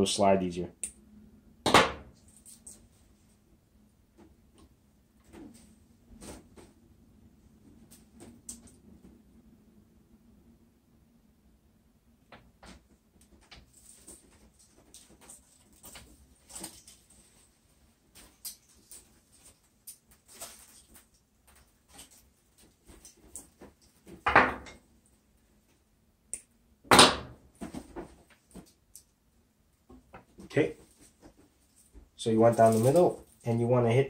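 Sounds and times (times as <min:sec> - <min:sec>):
rustles and clicks of handling: 0:12.4 - 0:25.8, 0:27.6 - 0:33.6.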